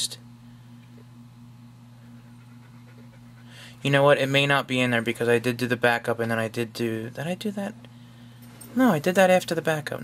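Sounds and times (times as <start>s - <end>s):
low electrical hum: 0.0s - 10.0s
man drawing breath: 3.4s - 3.8s
man speaking: 8.8s - 10.0s.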